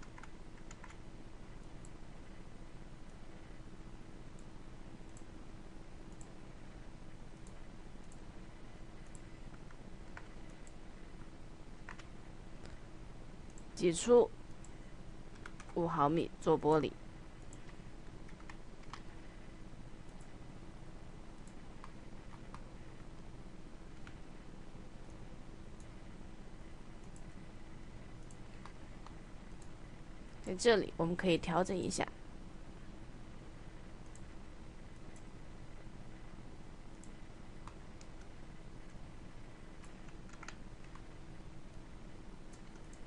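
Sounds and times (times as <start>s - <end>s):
computer clicks: 0.0s - 1.0s, 5.1s - 5.3s, 6.1s - 6.4s, 7.4s - 8.3s, 9.0s - 12.8s, 13.5s - 13.8s, 14.5s - 15.8s, 17.4s - 19.2s, 20.0s - 20.4s, 21.4s - 22.7s, 23.9s - 24.2s, 27.0s - 27.4s, 28.2s - 29.8s, 34.0s - 35.3s, 36.9s - 39.0s, 39.7s - 41.2s, 42.5s - 43.0s
faint hum: 0.0s - 43.0s
low background noise: 0.0s - 43.0s.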